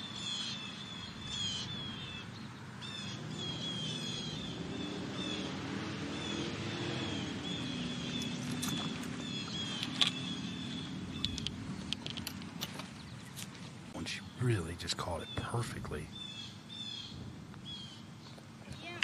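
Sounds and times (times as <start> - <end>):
small bird chirping: 0.0 - 13.6.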